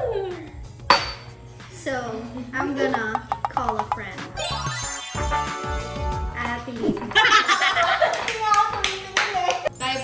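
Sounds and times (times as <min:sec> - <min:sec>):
background music: 0:00.0 - 0:10.0
women talking and laughing: 0:06.8 - 0:09.8
hand claps: 0:08.0 - 0:09.7.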